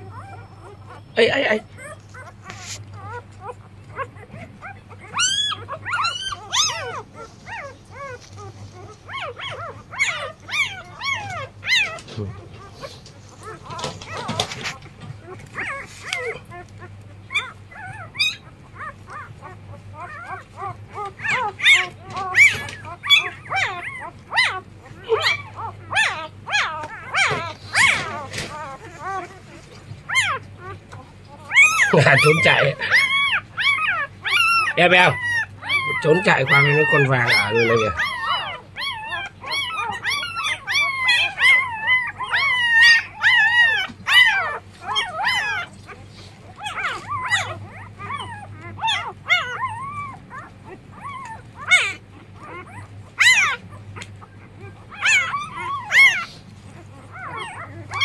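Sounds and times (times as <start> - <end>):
puppies whimpering and squealing: 0.0 - 58.0.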